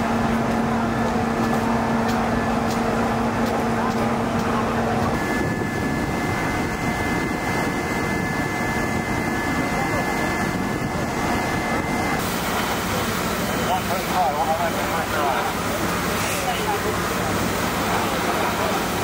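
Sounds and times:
engine drone: 0:00.0 - 0:19.0
outdoor noise: 0:00.0 - 0:19.0.

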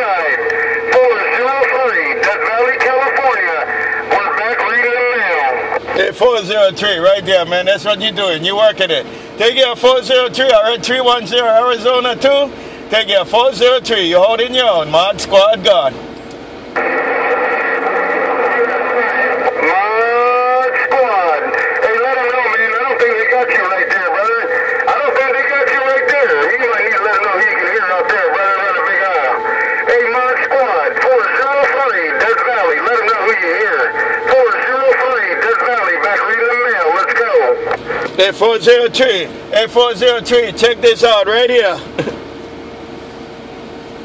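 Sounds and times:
garbled radio voices: 0:00.0 - 0:16.0, 0:16.8 - 0:42.0.

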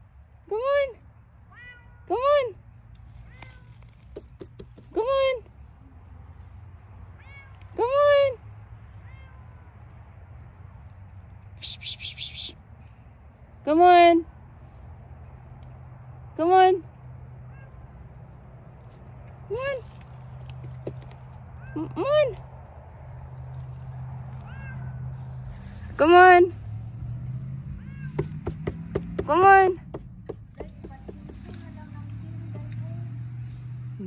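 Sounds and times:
kitten meow: 0:24.4 - 0:24.9.

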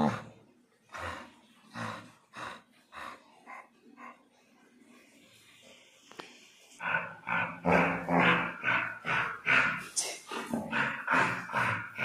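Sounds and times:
dog growling in play: 0:00.0 - 0:00.4, 0:06.8 - 0:12.0.

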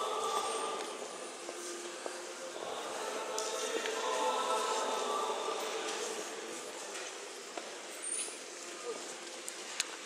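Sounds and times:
church choir singing held chords: 0:00.0 - 0:01.5, 0:02.2 - 0:06.8.

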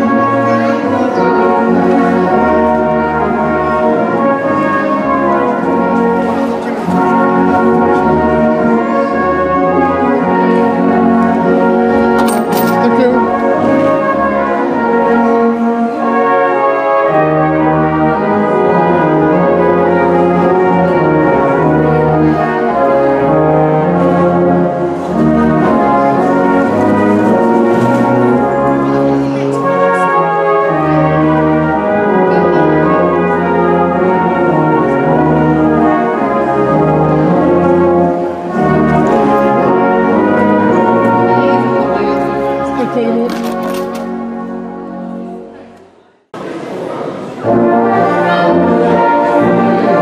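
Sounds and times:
brass band playing: 0:00.0 - 0:45.7, 0:46.4 - 0:50.0.

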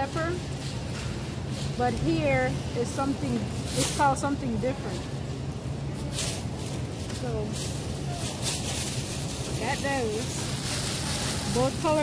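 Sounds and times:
plastic bag rustling: 0:00.0 - 0:12.0
steady low hum: 0:00.0 - 0:12.0.

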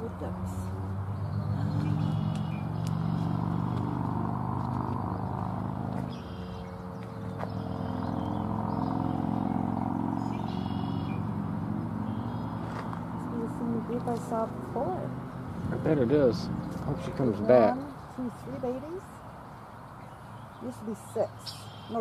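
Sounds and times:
vehicle engine running: 0:00.0 - 0:19.2.

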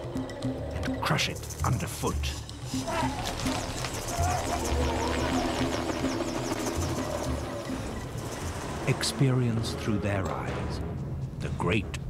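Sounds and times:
low drone tones: 0:02.4 - 0:11.0.

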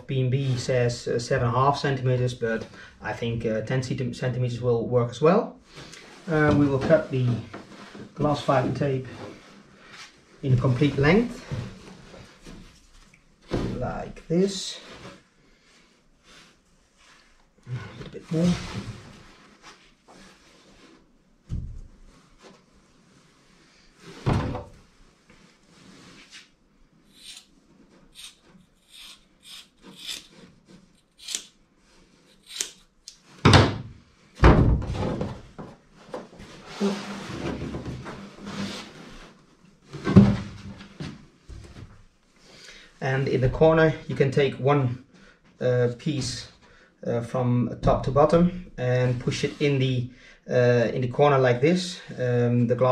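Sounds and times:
scissors snipping tape: 0:31.0 - 0:31.5, 0:32.4 - 0:33.2.

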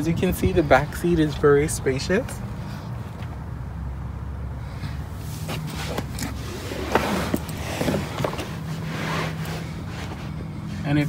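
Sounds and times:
phone rustling against cloth seat: 0:05.1 - 0:10.9.

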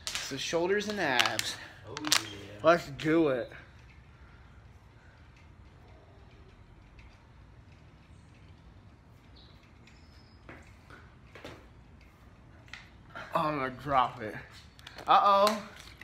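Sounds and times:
plastic bottle crinkling: 0:00.0 - 0:02.5.

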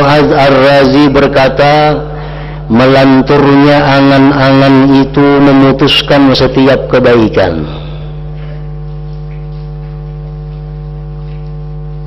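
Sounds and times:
mains hum: 0:00.0 - 0:12.0.

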